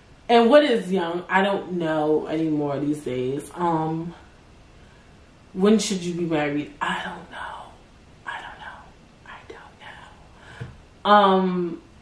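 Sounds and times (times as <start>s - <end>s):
woman whispering: 6.8s - 10.4s.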